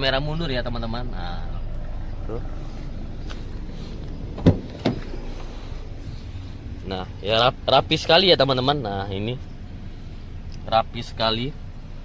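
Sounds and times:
low steady hum: 0:00.0 - 0:12.0
car door handle and latch clicks: 0:04.4 - 0:05.2.

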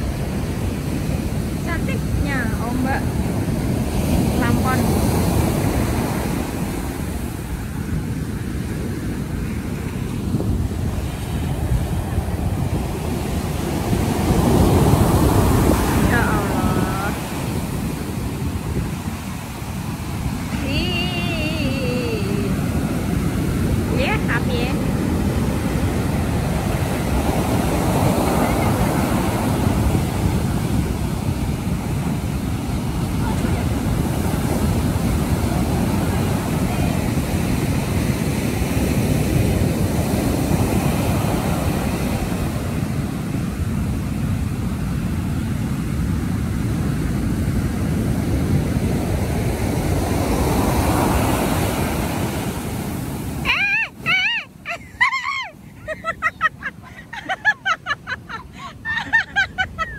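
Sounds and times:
ocean surf breaking: 0:00.0 - 0:59.9
voices: 0:15.8 - 0:17.3, 0:20.5 - 0:22.8, 0:23.8 - 0:24.9.

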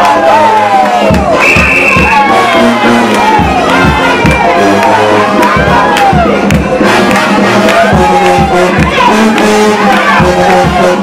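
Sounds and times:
bass drum beat: 0:00.0 - 0:11.0
crowd cheering and shouting: 0:00.0 - 0:11.0
brass band playing: 0:00.1 - 0:11.0.

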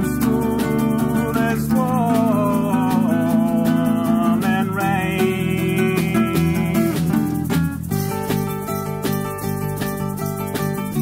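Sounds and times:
bass chords: 0:00.0 - 0:11.0
light percussion beat: 0:00.0 - 0:11.0
strummed acoustic guitar: 0:00.0 - 0:11.0
wavering lead guitar melody: 0:00.0 - 0:11.0.

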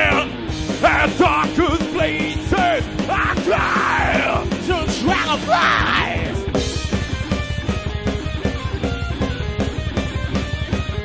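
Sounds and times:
person singing: 0:00.0 - 0:06.4
distorted electric guitar: 0:00.0 - 0:11.0
drums: 0:00.0 - 0:11.0.

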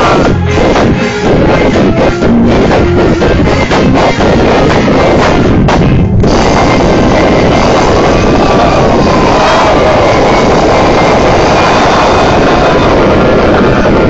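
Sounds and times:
live band playing loudly: 0:00.0 - 0:12.9.

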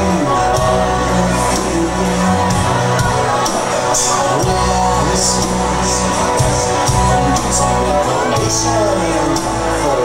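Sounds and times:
live band playing: 0:00.0 - 0:10.0
strummed guitars: 0:00.0 - 0:10.0.

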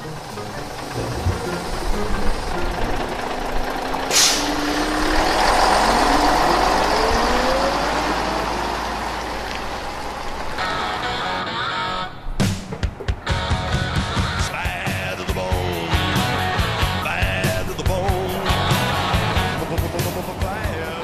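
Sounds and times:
bus engine running: 0:00.0 - 0:21.0
air brake hiss: 0:04.1 - 0:04.6.

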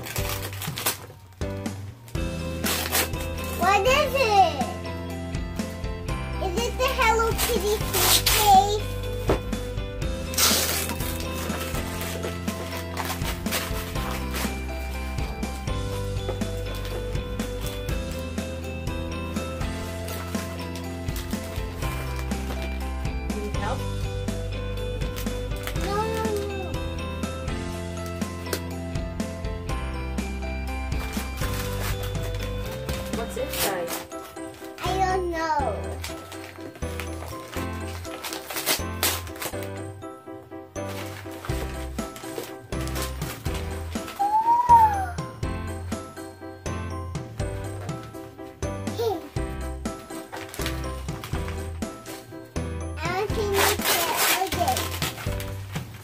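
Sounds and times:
wrapping paper ripping: 0:00.0 - 0:04.2, 0:06.4 - 0:08.9, 0:10.2 - 0:18.3, 0:19.4 - 0:22.9, 0:25.0 - 0:26.8, 0:30.9 - 0:35.2, 0:35.8 - 0:40.0, 0:40.8 - 0:45.2, 0:49.8 - 0:56.0
background music: 0:00.0 - 0:56.0.

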